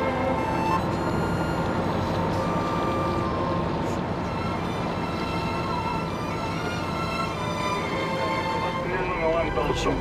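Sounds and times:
background music with held notes: 0.0s - 10.0s
boat engine running steadily: 0.0s - 10.0s.

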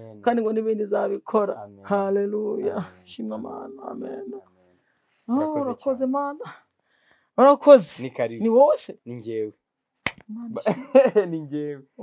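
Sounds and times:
people speaking: 0.0s - 4.4s, 5.3s - 6.6s, 7.4s - 9.6s, 10.3s - 12.0s.

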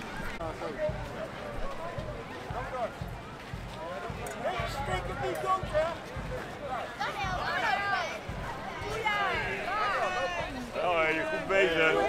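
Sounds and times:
crowd chatter: 0.0s - 12.0s
soft low thuds: 0.8s - 11.2s.

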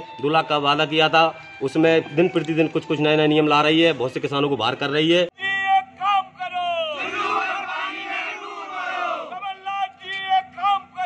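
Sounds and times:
men shouting slogans: 5.4s - 11.0s.

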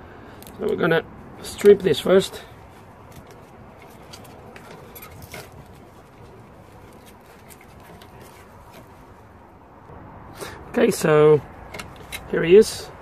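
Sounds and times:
wiring clicks and rustles: 0.4s - 9.9s, 11.4s - 12.7s.

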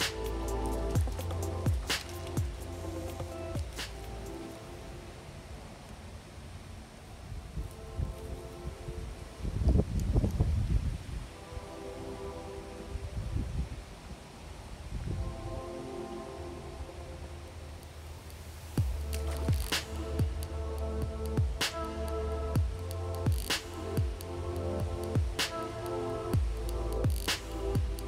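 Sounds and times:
heavy bass beat: 0.0s - 4.4s, 18.8s - 28.0s
sharp percussion: 0.0s - 4.4s, 18.8s - 28.0s
low rumble: 0.0s - 5.0s, 18.8s - 28.0s
sustained electronic chords: 0.0s - 6.8s, 15.1s - 28.0s.

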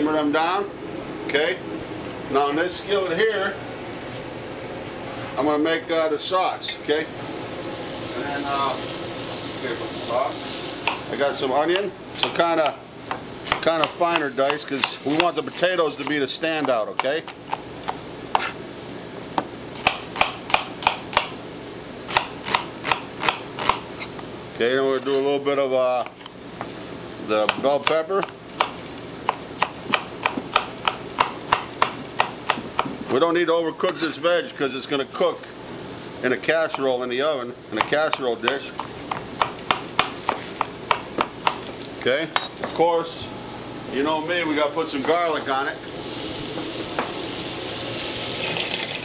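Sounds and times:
knife chopping on cutting board: 10.8s - 11.1s, 11.7s - 15.4s, 16.0s - 18.6s, 19.4s - 21.3s, 22.1s - 23.8s, 27.4s - 33.1s, 37.8s - 41.7s.

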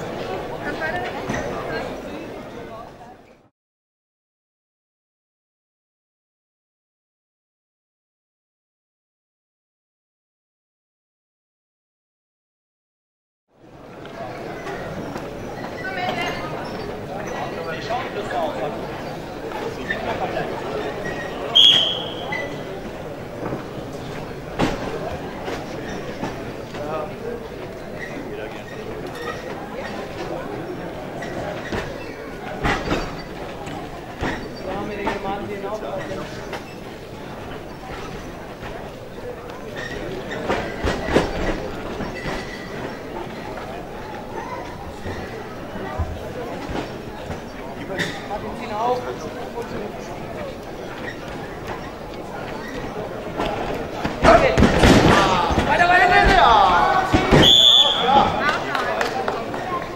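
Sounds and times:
crowd chatter: 0.0s - 3.5s, 13.5s - 59.9s.

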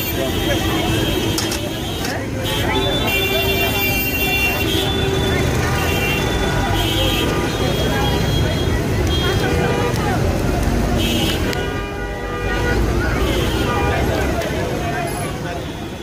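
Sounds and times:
vehicle horns tooting: 0.0s - 10.2s, 10.9s - 14.3s
crowd of voices talking: 0.0s - 16.0s
traffic: 0.0s - 16.0s.

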